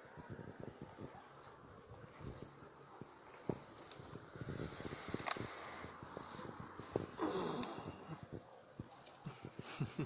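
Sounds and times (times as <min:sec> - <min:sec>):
dry grass crackling and rustling: 0:00.2 - 0:07.7.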